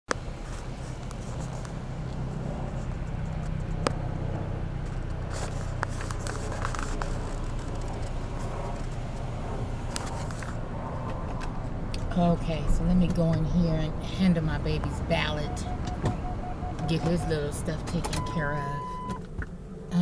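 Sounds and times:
car engine humming inside vehicle: 0:00.1 - 0:20.0.

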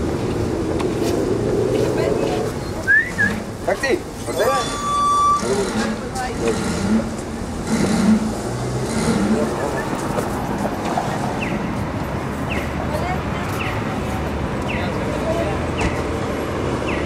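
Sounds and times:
traffic noise: 0:00.0 - 0:17.0
indistinct voices: 0:00.7 - 0:11.9
short high beep: 0:04.3 - 0:05.6.

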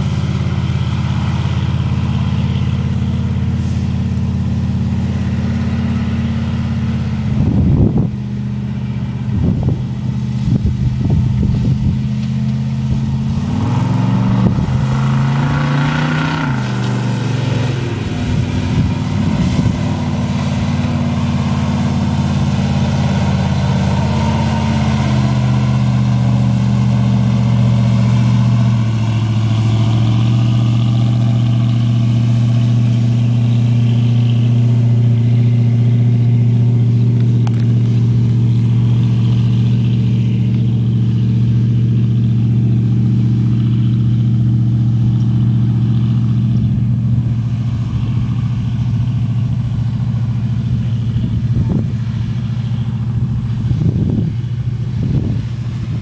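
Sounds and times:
swamp buggy engine droning: 0:00.0 - 0:56.0.

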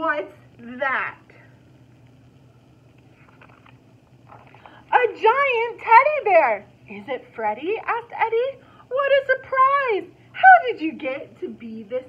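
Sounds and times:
woman speaking: 0:00.0 - 0:01.5, 0:04.9 - 0:12.0
book page turning: 0:03.0 - 0:04.7.

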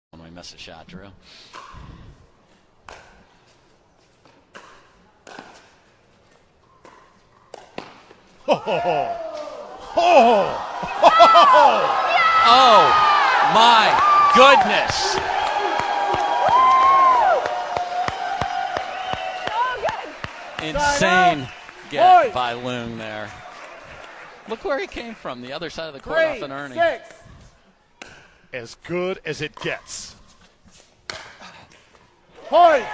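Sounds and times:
ball bouncing on court: 0:06.8 - 0:08.2.

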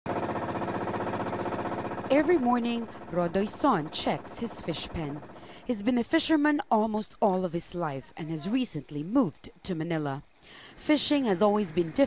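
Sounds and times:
small boat engine puttering: 0:00.1 - 0:07.4.

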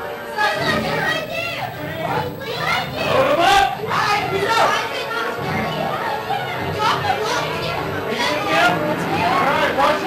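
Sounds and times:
voices yelling and screaming: 0:00.4 - 0:10.0.

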